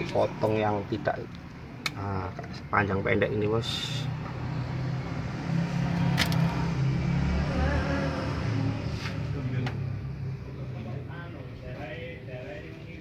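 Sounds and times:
engine rumbling: 0.0 - 13.0.

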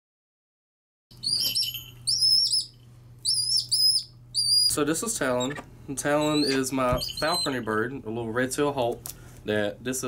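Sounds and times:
hawk calling: 1.2 - 7.7.

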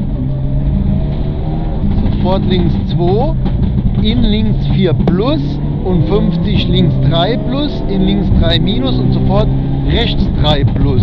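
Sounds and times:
car engine running hard: 0.0 - 11.0.

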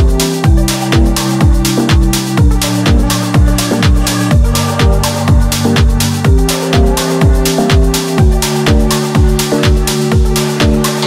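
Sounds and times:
electronic dance music: 0.0 - 11.0
fast kick drum: 0.0 - 11.0.

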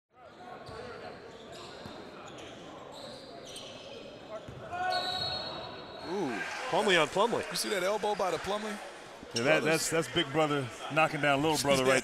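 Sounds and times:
high shoe squeaks: 0.7 - 4.2.

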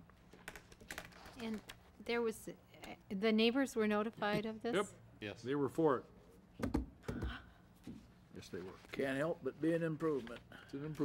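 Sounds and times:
typing on laptop keyboard: 0.3 - 1.8.

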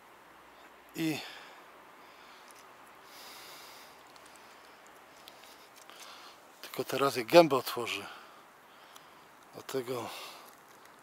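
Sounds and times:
outdoor background noise: 0.0 - 11.0
faint ticks: 2.4 - 3.0, 3.9 - 6.8, 8.7 - 9.6, 10.2 - 11.0.

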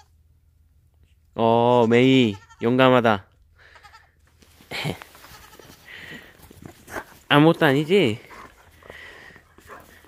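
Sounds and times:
goat kid bleating: 0.0 - 0.2, 1.7 - 3.0, 3.6 - 4.3, 4.9 - 6.4.

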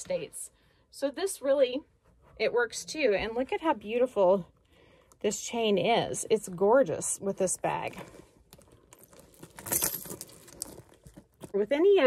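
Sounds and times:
metal chain strap clinking: 8.5 - 11.6.

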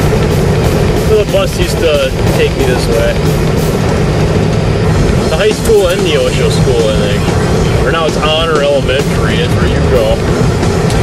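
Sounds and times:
car engine and tyre rumble: 0.0 - 11.0.

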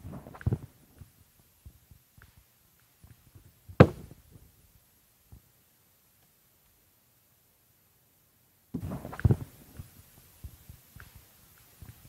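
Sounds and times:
faint small clicks: 9.2 - 12.0.

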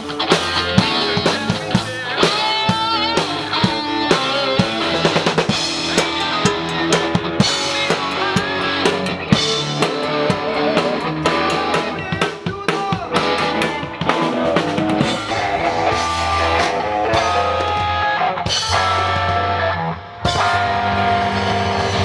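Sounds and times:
electric guitars: 0.0 - 22.0
live band playing: 0.0 - 22.0.

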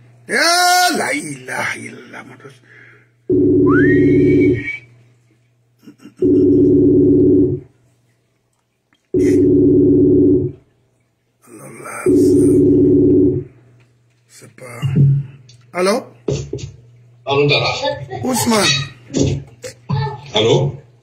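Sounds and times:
telephone ringback tone: 3.3 - 4.6, 6.2 - 7.6, 9.2 - 10.6, 12.1 - 13.5.

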